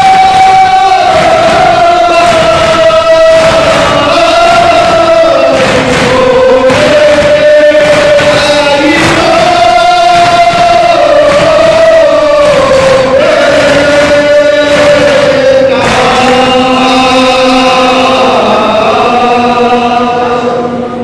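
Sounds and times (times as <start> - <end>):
men chanting a lament in unison: 0.0 - 21.0.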